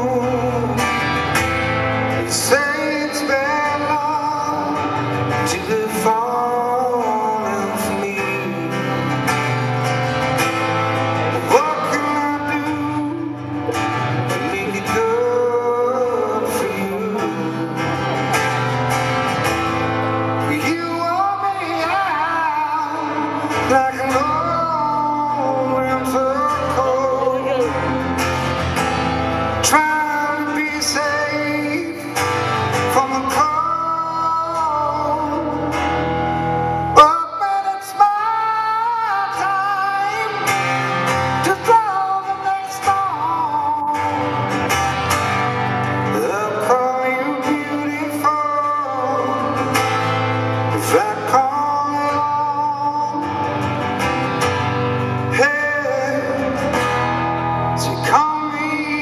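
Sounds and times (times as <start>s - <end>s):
acoustic guitar: 0.0s - 59.0s
man singing slow rock song: 0.0s - 59.0s.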